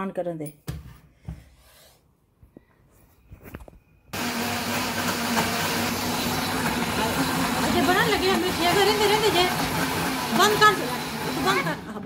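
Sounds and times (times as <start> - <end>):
electric blender running: 4.2 - 12.0.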